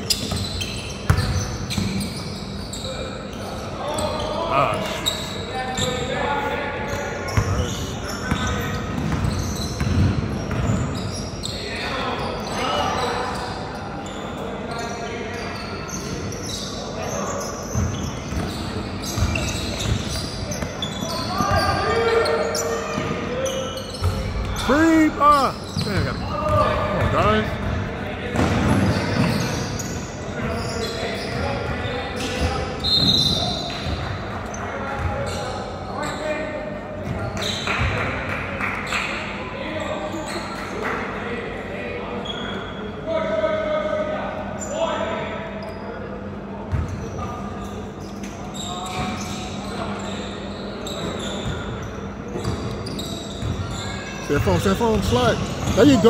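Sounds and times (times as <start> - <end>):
voices in gym: 0.0 - 56.0.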